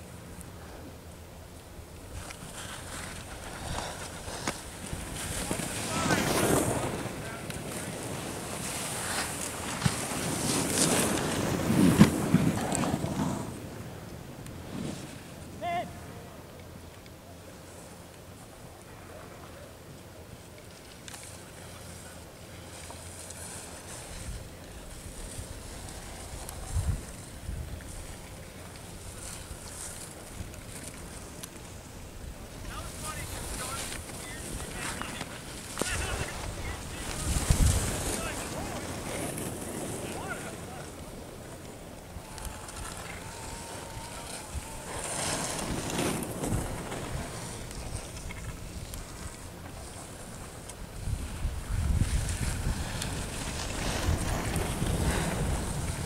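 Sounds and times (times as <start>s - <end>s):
skis scraping across snow: 0.5s - 15.6s, 17.4s - 56.0s
wind buffeting microphone: 24.1s - 29.7s, 32.1s - 41.2s, 50.8s - 56.0s.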